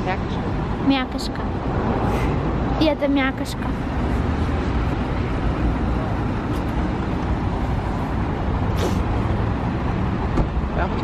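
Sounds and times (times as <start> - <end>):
bus engine idling: 0.0 - 11.0
short hiss: 8.7 - 9.1.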